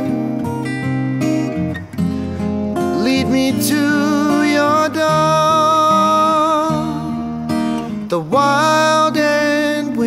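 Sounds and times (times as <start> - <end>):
acoustic guitars strumming chords: 0.0 - 10.0.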